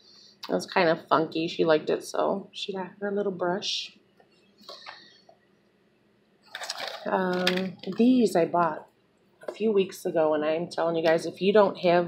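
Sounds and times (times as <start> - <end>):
rustling and clicking of desk items: 4.2 - 5.4, 6.4 - 8.4.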